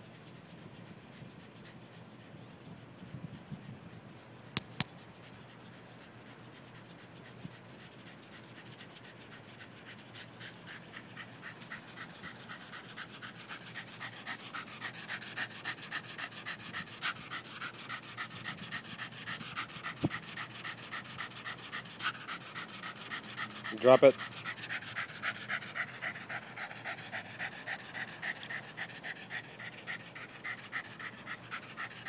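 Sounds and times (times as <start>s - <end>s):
dog panting hard: 0.0s - 32.0s.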